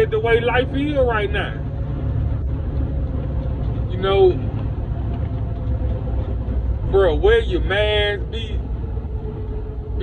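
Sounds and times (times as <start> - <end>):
truck engine rumble: 0.0 - 10.0.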